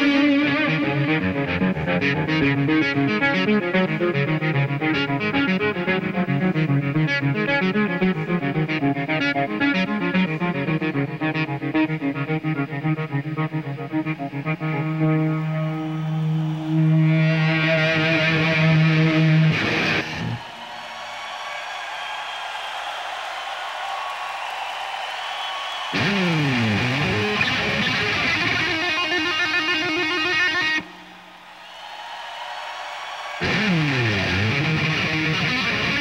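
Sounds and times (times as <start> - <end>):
electric guitar playing: 0.0 - 15.9, 16.6 - 20.4, 26.0 - 30.9, 33.4 - 36.0.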